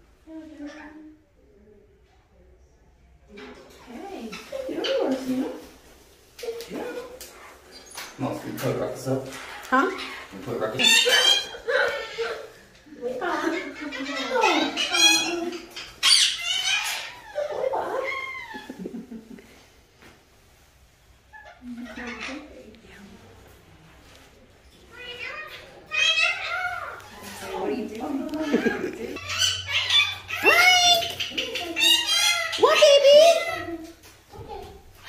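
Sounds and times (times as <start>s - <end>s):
parrots squawking and screeching: 4.2s - 5.7s, 6.4s - 19.1s, 21.2s - 22.7s, 24.7s - 35.0s.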